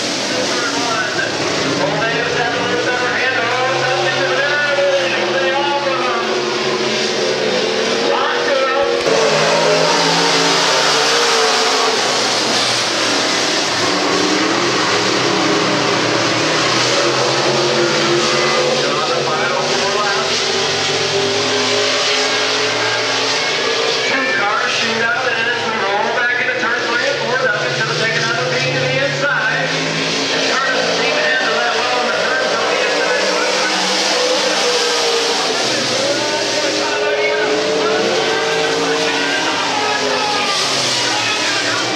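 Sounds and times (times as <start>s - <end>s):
race car engines running hard: 0.0s - 41.9s.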